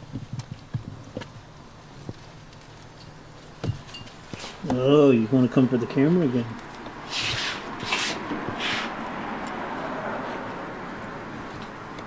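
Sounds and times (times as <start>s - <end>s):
steady low hiss: 0.0s - 12.0s.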